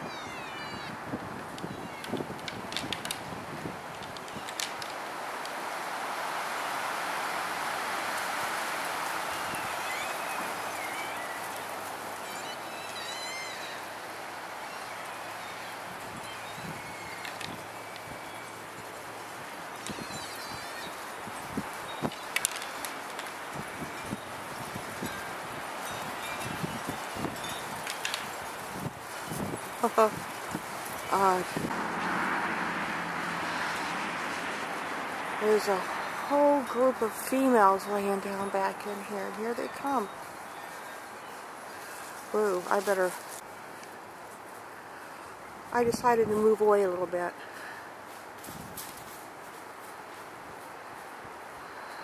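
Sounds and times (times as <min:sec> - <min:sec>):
steady outdoor hiss: 0:00.0 - 0:52.0.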